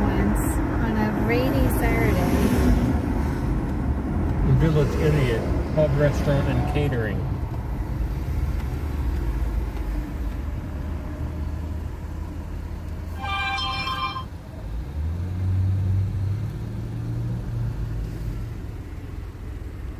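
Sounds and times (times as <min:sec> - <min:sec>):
car engine and road noise: 0:00.0 - 0:19.9
brief ringing tone: 0:13.2 - 0:14.3.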